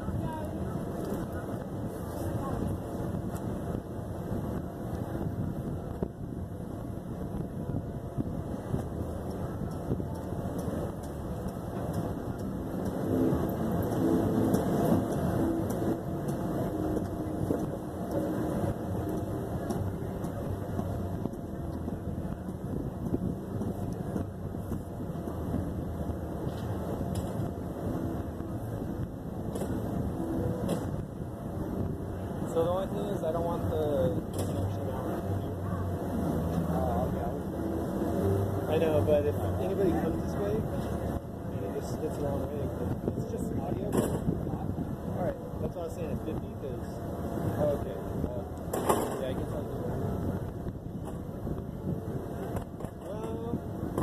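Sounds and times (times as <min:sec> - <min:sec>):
low outdoor rumble: 0:00.0 - 0:54.0.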